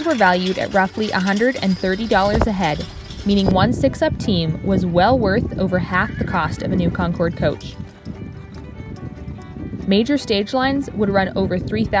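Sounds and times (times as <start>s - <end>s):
faint background music: 0.0s - 12.0s
horse hooves clopping on dirt: 0.0s - 12.0s.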